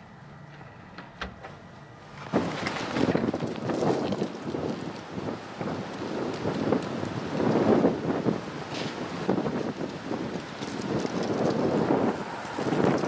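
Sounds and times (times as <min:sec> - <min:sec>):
wind buffeting microphone: 0:02.2 - 0:13.0.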